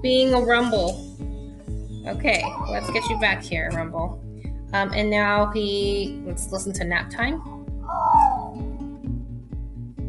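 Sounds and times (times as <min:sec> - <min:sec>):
guitar music with beat: 0:00.0 - 0:10.0.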